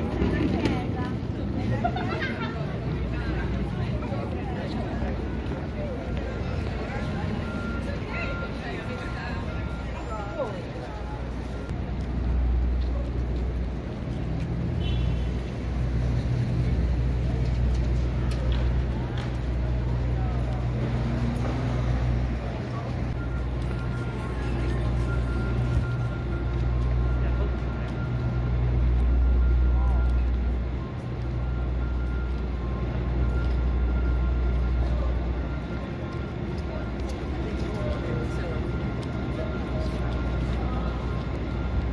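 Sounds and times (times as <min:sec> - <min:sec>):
traffic engine rumble: 0:00.0 - 0:41.9
voices of passers-by: 0:00.0 - 0:41.9.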